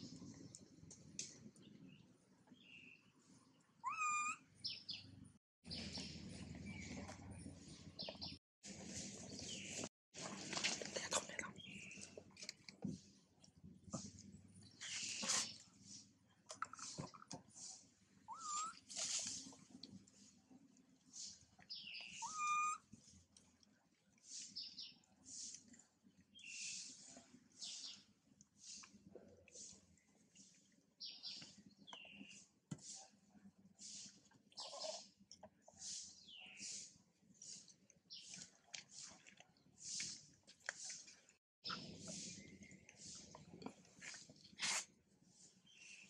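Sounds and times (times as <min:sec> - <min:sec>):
baby monkey high-pitched cry: 0:03.8 - 0:04.4, 0:18.3 - 0:18.8, 0:22.2 - 0:22.8.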